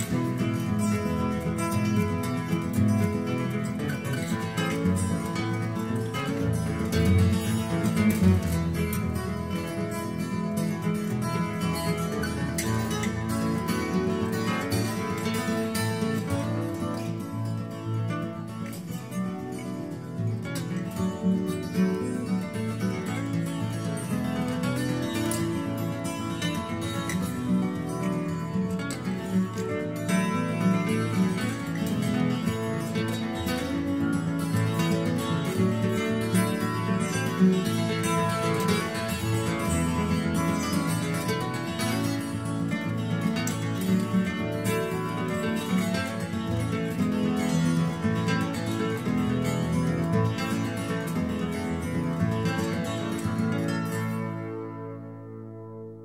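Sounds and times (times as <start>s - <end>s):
plucked acoustic guitar music: 0.0s - 56.0s.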